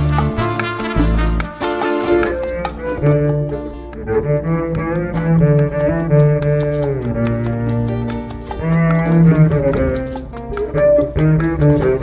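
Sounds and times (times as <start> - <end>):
bowed double bass notes: 0.0 - 12.0.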